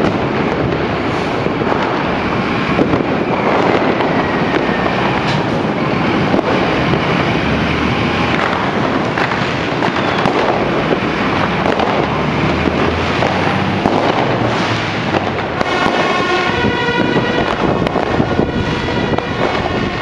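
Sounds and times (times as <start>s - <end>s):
fire engine rumble: 0.0s - 20.0s
fireworks crackling and banging: 0.0s - 20.0s.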